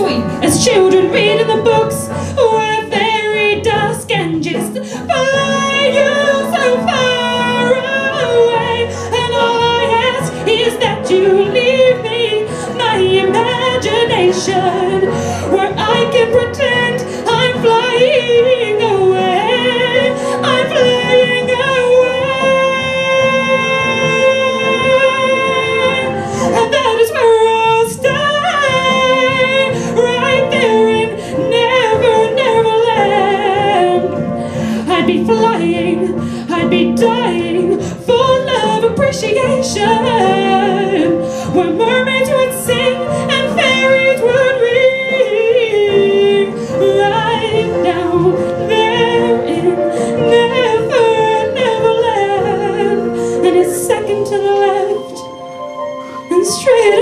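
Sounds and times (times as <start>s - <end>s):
woman singing into a microphone: 0.0s - 55.4s, 56.2s - 57.0s.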